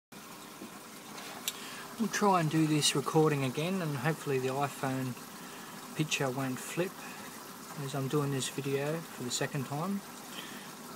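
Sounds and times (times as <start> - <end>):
water splashing and bubbling: 0.2 - 10.9.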